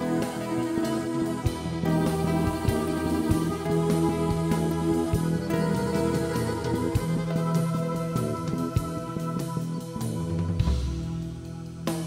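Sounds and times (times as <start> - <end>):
bass: 0.0 - 12.0
drums: 0.0 - 12.0
plucked string notes: 0.0 - 12.0.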